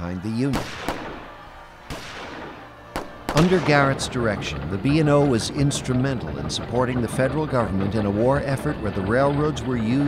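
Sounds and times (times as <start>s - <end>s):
gunshots with long echo: 0.5s - 4.2s.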